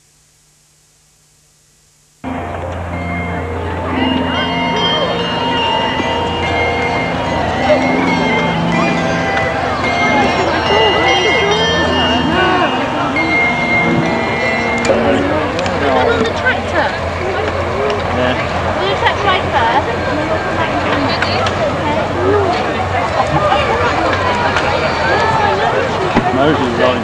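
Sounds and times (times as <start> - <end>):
music of long held notes: 2.2 - 27.0
crowd chatter of adults and children: 2.3 - 27.0.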